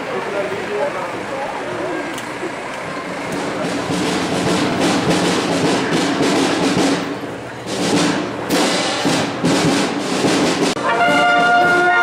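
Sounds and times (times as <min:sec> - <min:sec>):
marching wind band playing: 0:01.8 - 0:12.0
drum strokes: 0:02.8 - 0:12.0.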